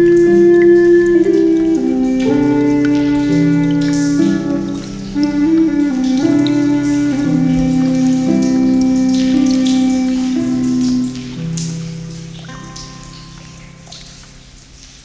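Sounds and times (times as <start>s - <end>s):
flute and harp instrumental music: 0.0s - 11.7s
water dripping: 0.0s - 15.0s.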